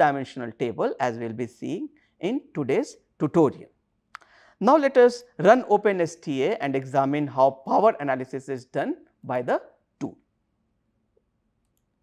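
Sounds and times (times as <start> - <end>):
person speaking: 0.0 - 10.3.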